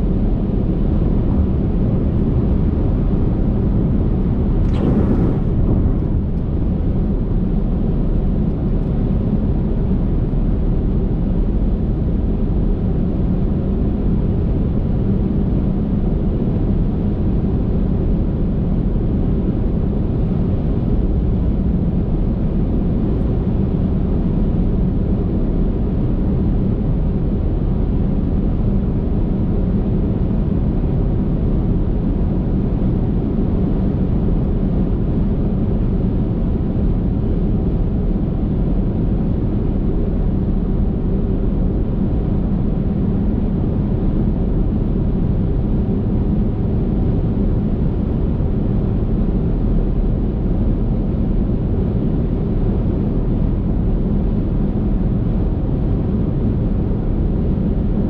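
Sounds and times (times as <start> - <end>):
car driving at highway speed: 3.8 - 8.4.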